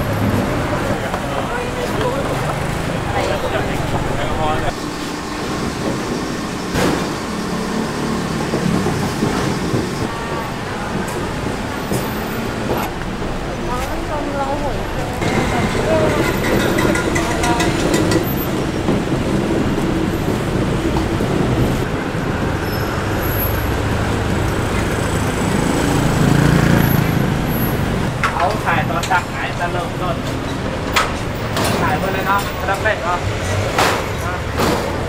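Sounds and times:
people talking: 0.0 - 4.8, 12.6 - 18.4, 28.2 - 30.7, 31.5 - 35.0
vehicles passing close by: 0.0 - 35.0.

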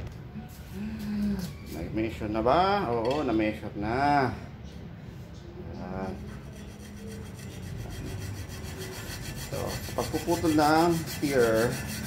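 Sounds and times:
hacksaw rasping through metal tube: 6.5 - 12.0.

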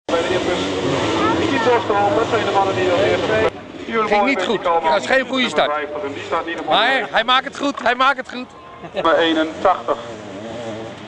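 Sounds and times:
man talking: 0.1 - 10.2
racing engines accelerating: 0.1 - 11.0.

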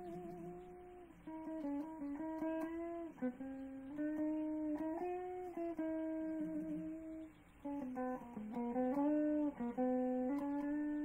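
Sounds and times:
electric guitar notes: 0.0 - 11.0.

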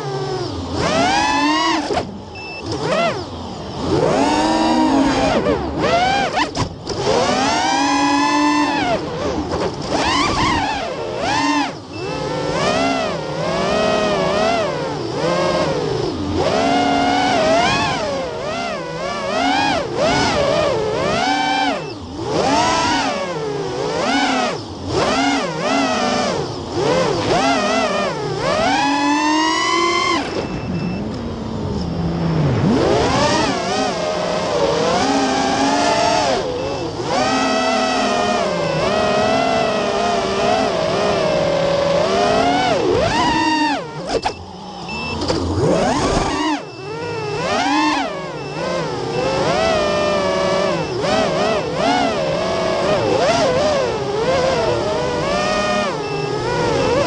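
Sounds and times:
quadcopter motors whining: 0.0 - 57.0.

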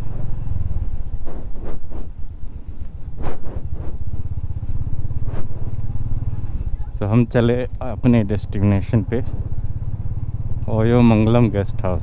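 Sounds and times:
motorcycle engine at low revs: 0.0 - 12.0.

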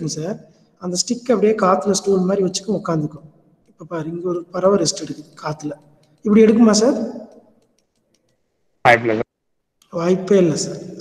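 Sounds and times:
man speaking: 0.0 - 3.2, 3.8 - 7.1, 8.9 - 9.3, 9.9 - 11.0
person speaking: 0.0 - 11.0.

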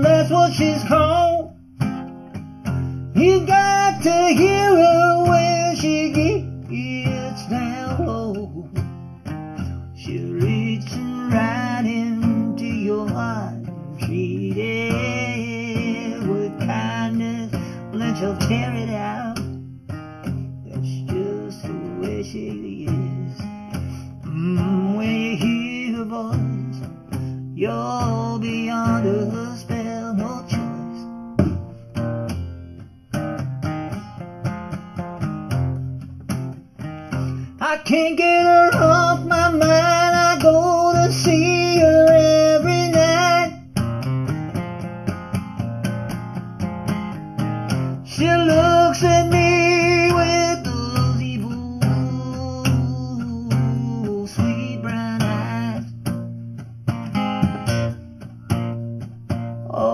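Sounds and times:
acoustic blues guitar with bent notes: 0.0 - 59.9
strummed and bass accompaniment: 0.0 - 59.9.

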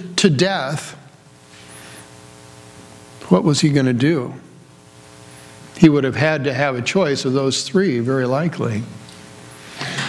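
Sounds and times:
mains hum: 0.0 - 10.0.

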